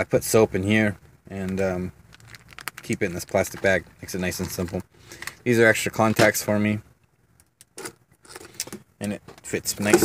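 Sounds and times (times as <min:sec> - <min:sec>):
small objects clicking and rattling: 0:01.5 - 0:03.8.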